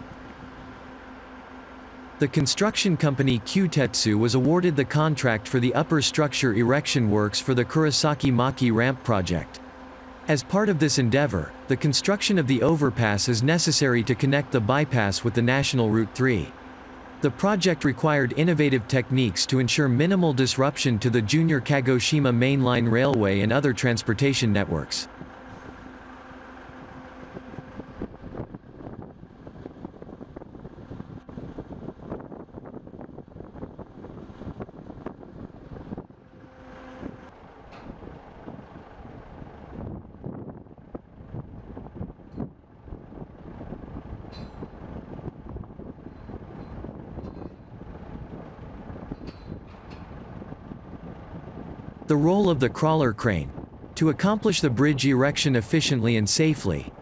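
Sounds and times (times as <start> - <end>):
rumble of vehicles and machinery: 0.0 - 57.0
steady engine hum: 0.0 - 57.0.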